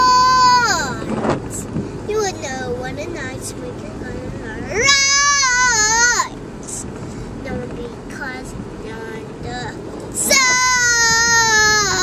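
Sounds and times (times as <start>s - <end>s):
car road noise: 0.0s - 12.0s.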